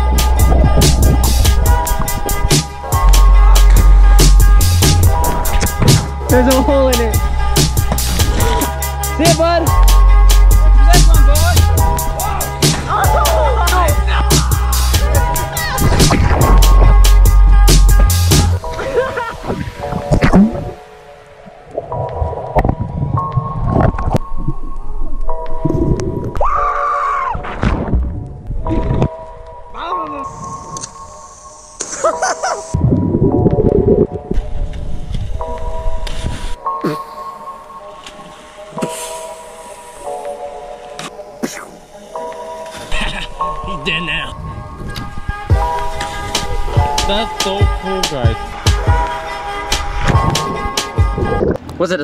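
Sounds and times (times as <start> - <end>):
background music: 0.0 - 52.0.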